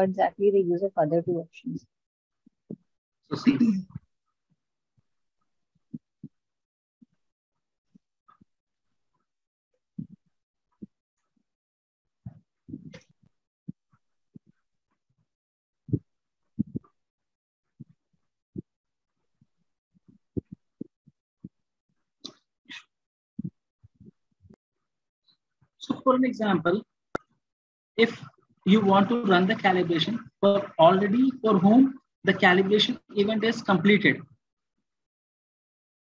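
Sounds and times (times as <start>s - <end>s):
soft low thumps: 15.9s - 16.9s.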